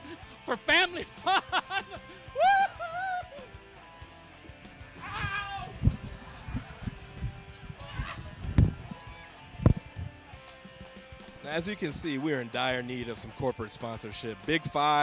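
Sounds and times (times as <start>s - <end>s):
faint background music: 0.0s - 15.0s
man whooping: 0.8s - 3.6s, 4.9s - 6.8s, 7.8s - 8.6s.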